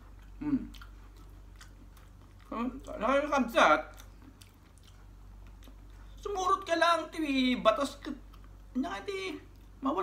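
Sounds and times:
man chewing food: 0.0 - 9.8.

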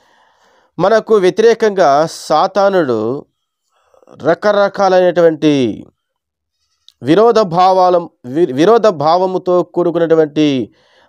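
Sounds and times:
man speaking: 0.8 - 3.3, 4.0 - 5.9, 7.0 - 10.7.

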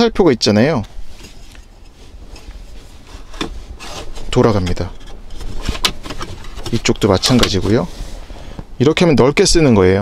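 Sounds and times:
hard plastic rubbing and scraping: 1.1 - 8.3.

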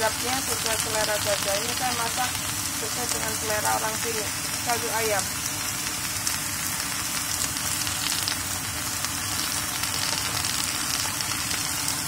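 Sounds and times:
vegetables sizzling in a pan: 0.0 - 12.0.

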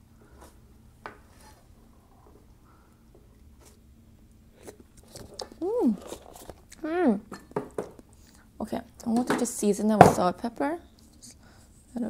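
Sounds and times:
person humming: 5.6 - 6.0.

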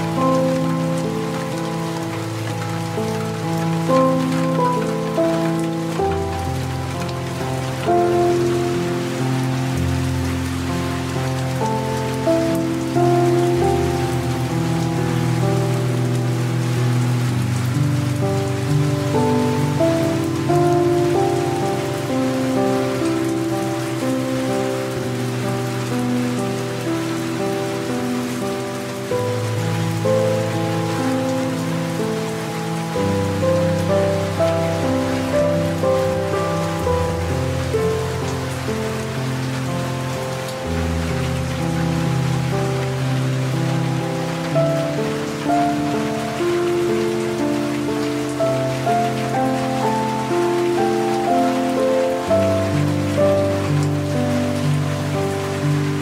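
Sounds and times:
light rain hiss: 0.0 - 56.0
soft slow piano chords: 0.0 - 56.0.

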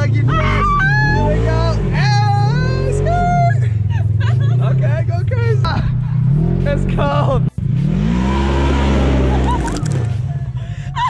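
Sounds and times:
off-road vehicle engine running hard: 0.0 - 11.0.

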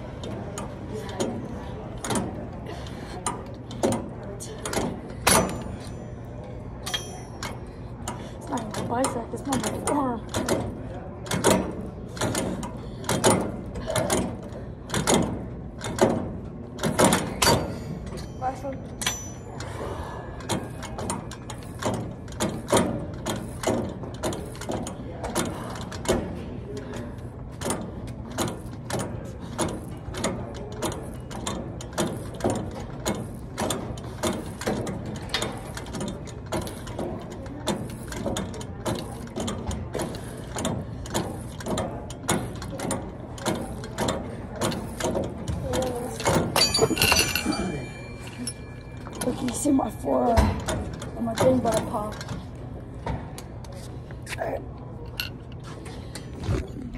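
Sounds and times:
gym cable machine clicking: 0.1 - 52.6.

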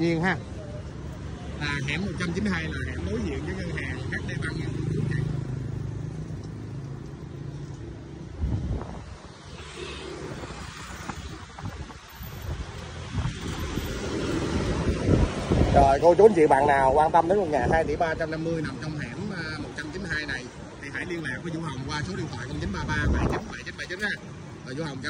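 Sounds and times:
background traffic noise: 0.0 - 25.0
motorbike engines passing: 0.0 - 25.0.

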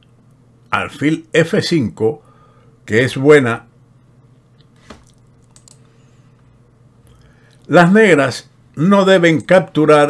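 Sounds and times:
low room hum: 0.0 - 10.0
faint clicks and ticks: 4.5 - 5.9.

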